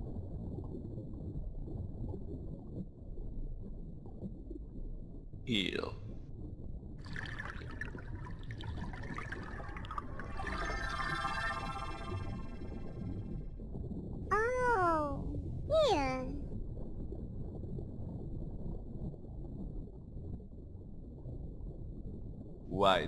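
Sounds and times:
underwater low rumble: 0.0s - 15.7s, 16.3s - 22.8s
faint bubbling gurgles: 0.0s - 23.0s.

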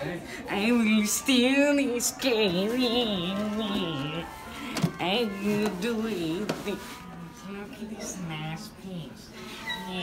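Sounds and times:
person singing wordlessly: 0.5s - 8.7s.

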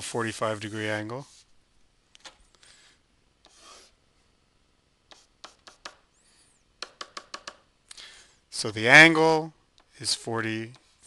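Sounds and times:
stylus tapping on tablet: 5.1s - 6.0s, 6.8s - 7.7s.

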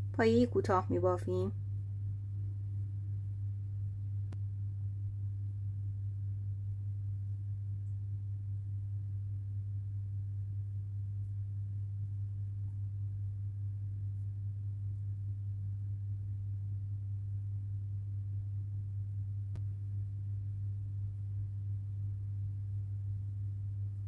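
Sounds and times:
low electrical hum: 0.0s - 24.0s.

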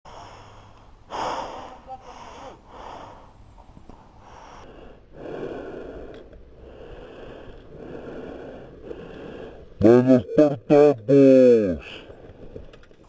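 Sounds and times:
person breathing heavily: 0.1s - 10.1s.

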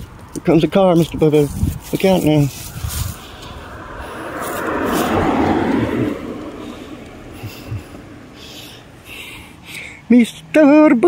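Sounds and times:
car driving past: 2.9s - 8.4s.

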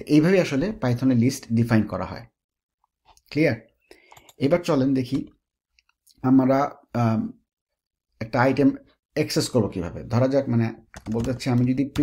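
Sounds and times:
computer keyboard clicks: 10.9s - 12.0s.

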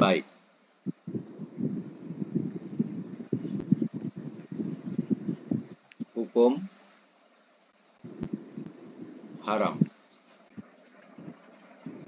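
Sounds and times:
faint background noise: 0.0s - 12.0s
soft low bumps: 0.9s - 6.2s.

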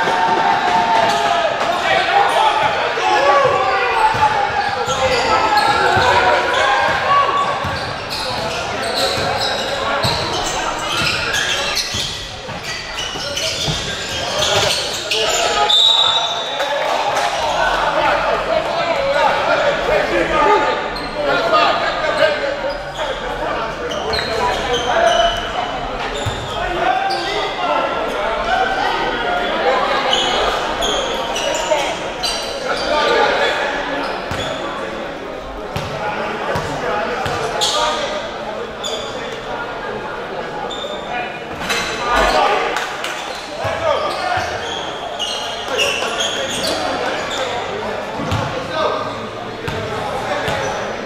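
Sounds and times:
spectators chattering and shouting: 0.0s - 51.0s
shoes squeaking on gym floor: 7.6s - 16.5s, 43.3s - 48.4s.

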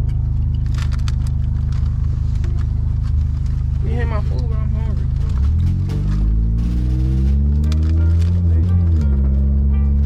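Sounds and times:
car engine accelerating: 0.0s - 10.0s.

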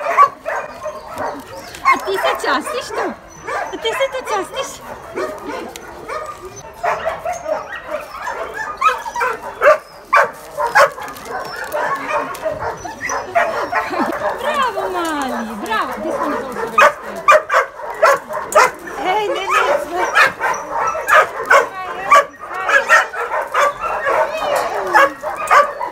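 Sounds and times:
young dogs yipping and barking: 0.0s - 25.9s.

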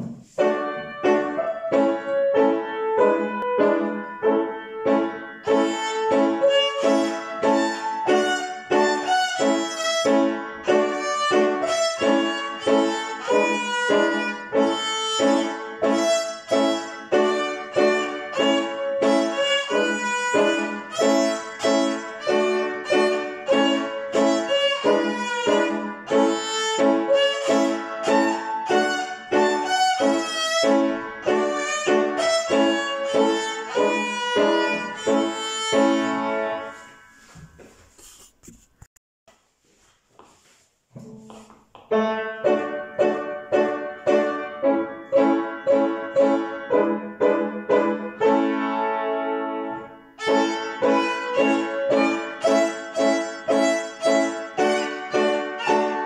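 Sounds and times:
solo violin: 4.9s - 36.8s, 50.2s - 56.0s.

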